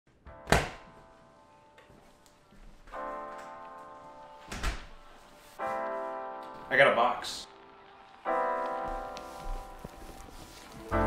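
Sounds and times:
piano chords ringing: 0.1 - 11.0.

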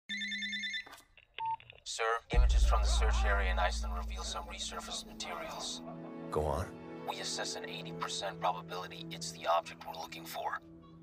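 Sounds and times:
telephone ringing: 0.1 - 1.6.

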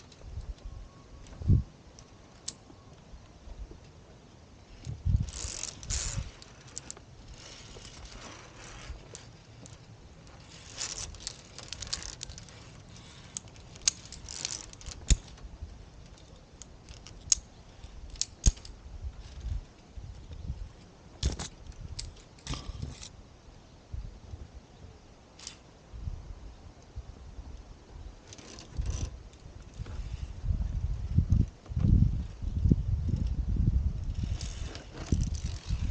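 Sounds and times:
carabiners clicking against steel cable: 1.9 - 2.6, 4.7 - 15.4, 16.0 - 19.6, 21.2 - 23.2, 25.4 - 25.7, 28.2 - 30.2, 34.0 - 35.9
low rumbling on microphone: 28.7 - 35.9.

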